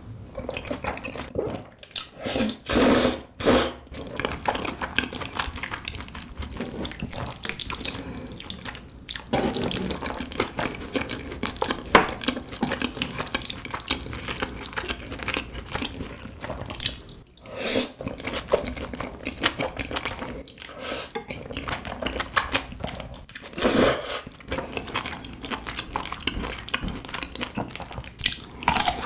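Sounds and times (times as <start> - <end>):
sticky chewing and mouth sounds: 3.9 - 23.6, 24.2 - 29.0.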